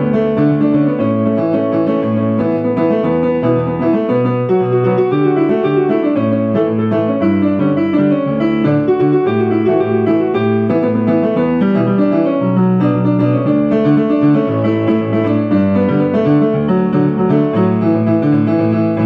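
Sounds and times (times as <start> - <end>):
solo piano pop song: 0.0 - 19.0.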